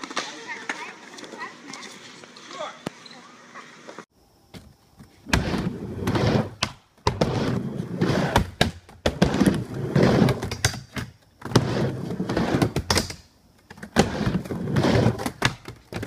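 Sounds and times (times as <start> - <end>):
skateboard wheels rolling on wood: 0.0 - 4.0, 4.6 - 16.0.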